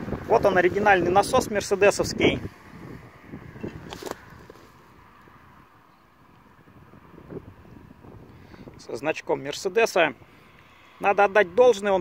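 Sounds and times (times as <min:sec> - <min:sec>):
faint wind on microphone: 0:00.0 - 0:12.0.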